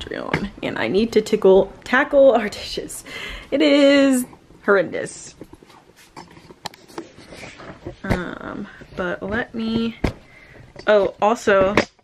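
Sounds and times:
soft rustling: 0:03.8 - 0:11.3.

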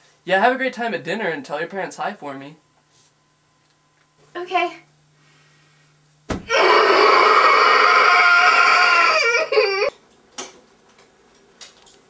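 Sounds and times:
person crying wail: 0:06.5 - 0:09.9.

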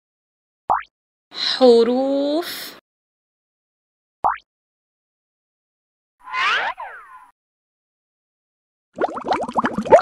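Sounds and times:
cartoon swooping boing: 0:06.3 - 0:07.3.

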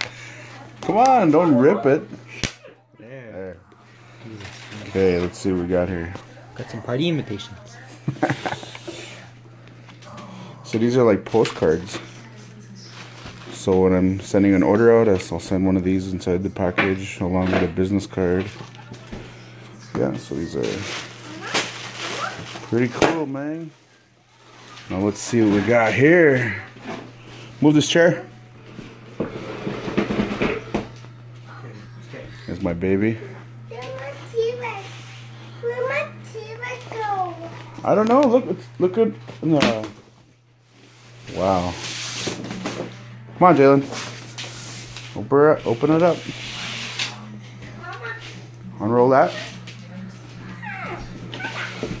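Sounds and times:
plastic wrapper rustling: 0:04.2 - 0:05.6, 0:12.9 - 0:13.8, 0:20.4 - 0:23.0, 0:23.6 - 0:25.6
chair scraping on wooden floor: 0:28.7 - 0:30.9, 0:43.8 - 0:47.2.

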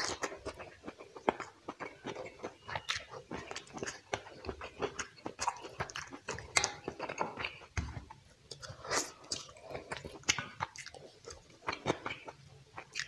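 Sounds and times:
wet chewing and mouth smacks: 0:00.0 - 0:13.0.

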